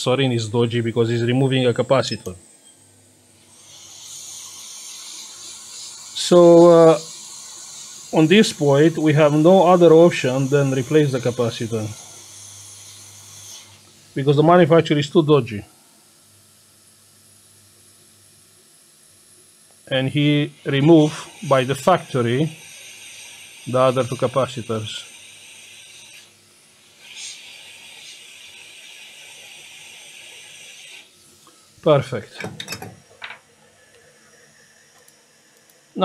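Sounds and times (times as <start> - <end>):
steady soldering hiss: 0.0 - 36.0.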